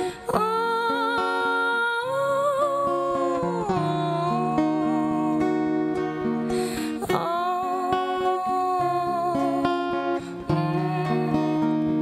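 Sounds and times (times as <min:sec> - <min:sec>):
fingerpicked acoustic guitar: 0:00.0 - 0:12.0
woman singing long wordless note: 0:00.0 - 0:12.0.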